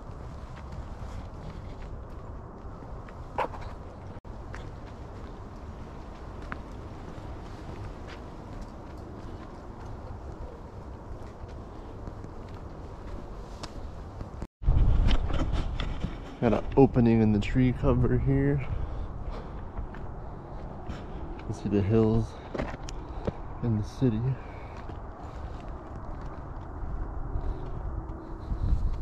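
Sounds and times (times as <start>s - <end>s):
footsteps crunching on trail: 0.0s - 15.1s, 18.5s - 29.0s
steady low rumble: 0.0s - 29.0s.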